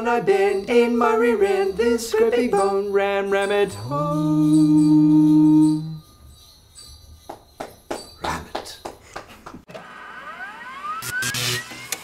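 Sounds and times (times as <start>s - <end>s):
jingling strikes: 0.0s - 9.1s
rising pitch glide: 9.8s - 12.0s.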